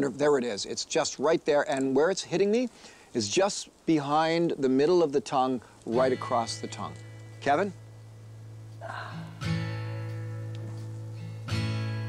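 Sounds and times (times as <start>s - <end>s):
acoustic guitar chord ringing: 5.9s - 12.0s.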